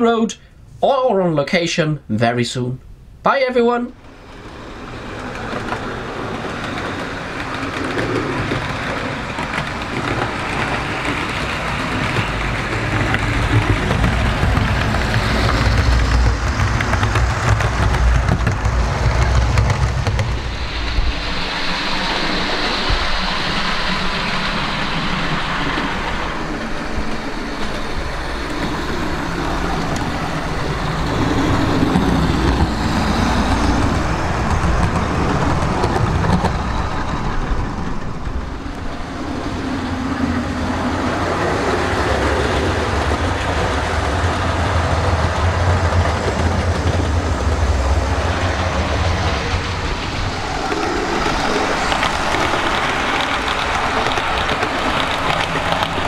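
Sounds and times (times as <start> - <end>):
model train wheels rumbling: 4.0 - 56.0.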